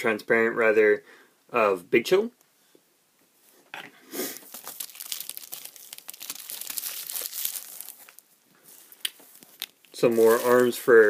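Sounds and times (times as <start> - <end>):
plastic packaging crinkling: 4.4 - 11.0.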